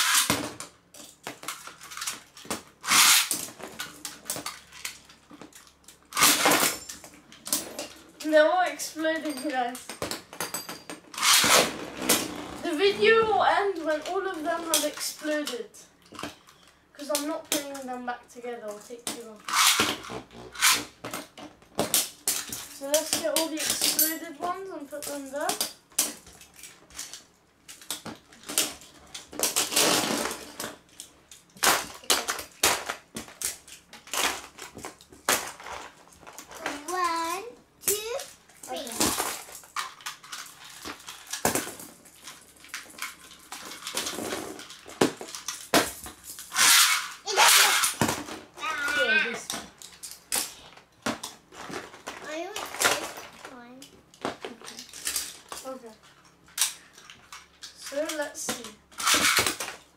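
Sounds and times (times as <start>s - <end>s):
spinning tops clattering on plastic: 37.8s - 48.4s.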